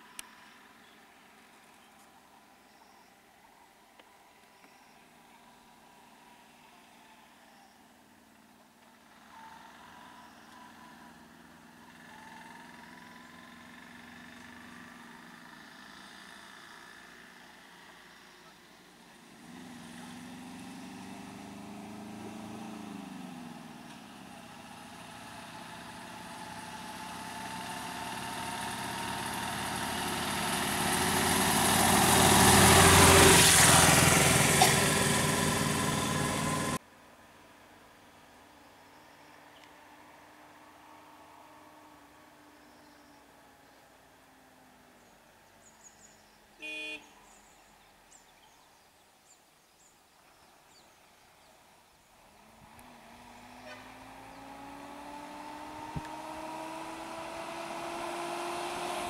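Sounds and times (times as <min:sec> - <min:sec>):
traffic passing: 0:07.9 - 0:48.4, 0:50.2 - 0:59.0
vehicle engine revving: 0:19.1 - 0:36.8, 0:52.2 - 0:59.0.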